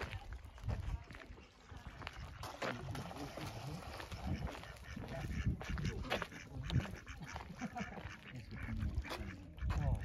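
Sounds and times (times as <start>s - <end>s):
ducks quacking: 0.8s - 10.0s.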